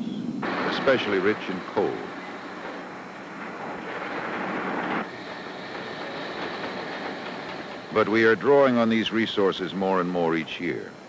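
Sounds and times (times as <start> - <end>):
steady mechanical rushing noise: 0.4 - 11.0.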